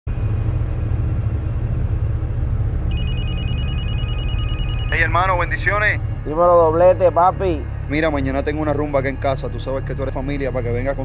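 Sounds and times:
steady low rumble: 0.1 - 11.0
telephone ringing with trilling tone: 2.9 - 5.6.

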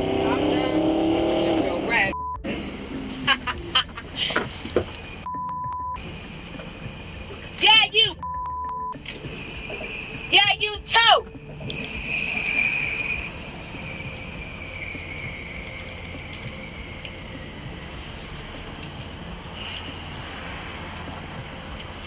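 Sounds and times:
vehicle engine idling: 1.8 - 12.2, 12.8 - 22.0
crickets chirring: 6.0 - 8.0, 9.0 - 22.0.

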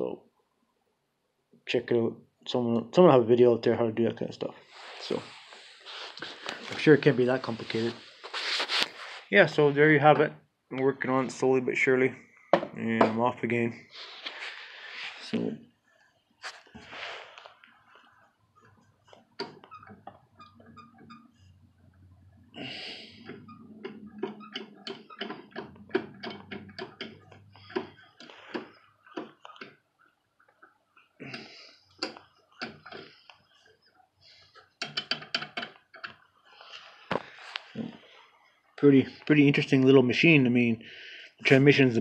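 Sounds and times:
hand tapping metal parts: 23.1 - 29.8, 30.4 - 36.4.

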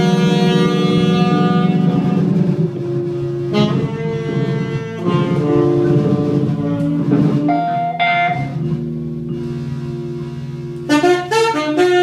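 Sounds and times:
keyboard and bass low notes: 0.0 - 12.0
saxophone note: 0.0 - 12.0.

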